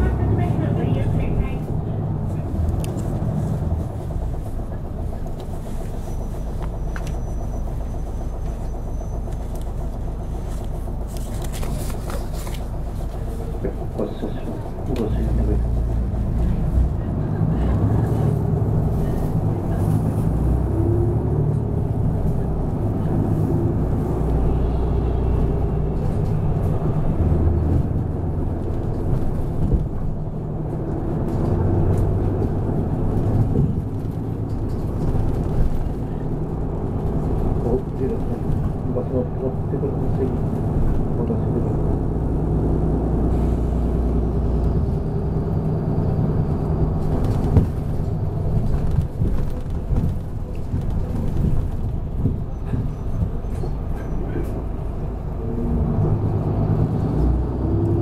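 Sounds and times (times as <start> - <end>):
bus diesel engine rumble: 0.0 - 58.0
road noise: 0.0 - 58.0.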